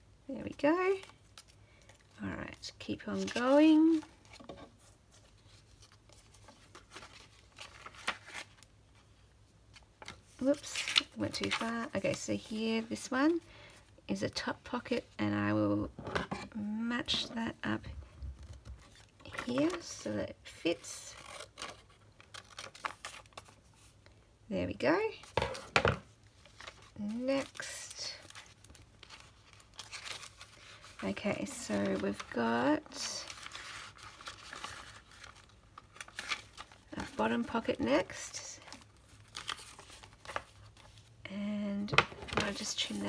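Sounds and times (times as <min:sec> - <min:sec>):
paper pages turning: 0:03.1 - 0:08.7, 0:26.4 - 0:41.2.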